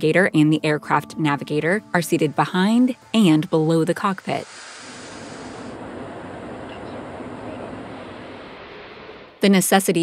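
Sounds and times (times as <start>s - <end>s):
aircraft engine and airflow noise: 2.8s - 10.0s.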